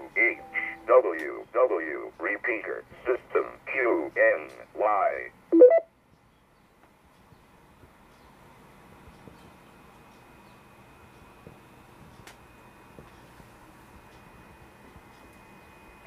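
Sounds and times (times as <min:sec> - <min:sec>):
man's voice: 0:00.0 - 0:05.3
short beeps: 0:05.6 - 0:05.9.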